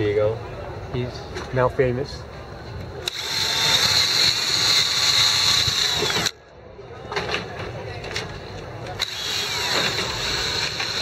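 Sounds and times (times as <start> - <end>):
cordless drill boring: 3.0 - 6.4, 9.0 - 11.0.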